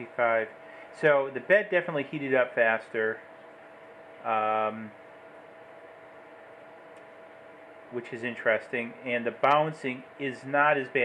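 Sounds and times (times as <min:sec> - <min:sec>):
cooling fans whirring: 0:00.0 - 0:11.0.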